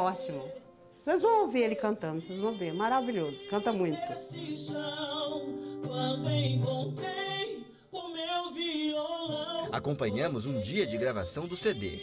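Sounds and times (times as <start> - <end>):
musical backing: 0.0 - 12.0
man singing: 2.0 - 12.0.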